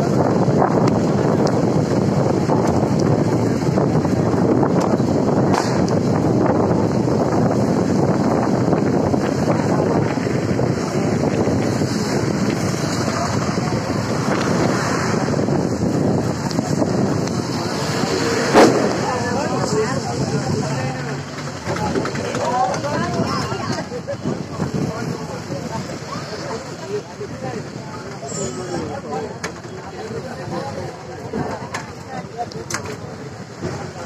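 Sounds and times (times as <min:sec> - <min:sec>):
wind buffeting microphone: 0:00.0 - 0:28.1
road noise on wet road: 0:00.0 - 0:34.0.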